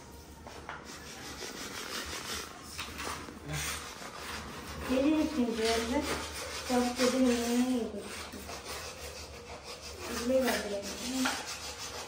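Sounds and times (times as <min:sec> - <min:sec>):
hand rasp scraping: 0:03.5 - 0:12.0.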